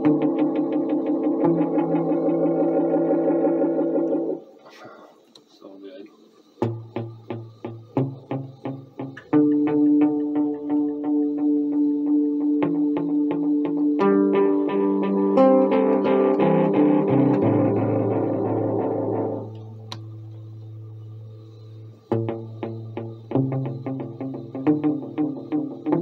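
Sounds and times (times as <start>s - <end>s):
electric guitar chords with echo: 0.0s - 4.4s, 6.6s - 26.0s
plucked guitar notes with echo: 0.0s - 4.4s, 6.6s - 20.8s.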